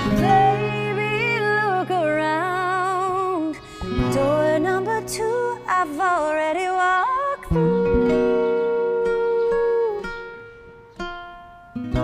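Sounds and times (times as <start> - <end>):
woman singing: 0.0 - 10.3
acoustic guitars: 0.0 - 12.0.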